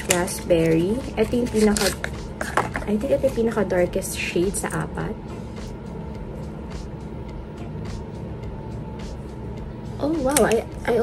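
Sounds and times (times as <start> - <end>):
faint hum: 0.0 - 11.0
low background rumble: 0.0 - 11.0.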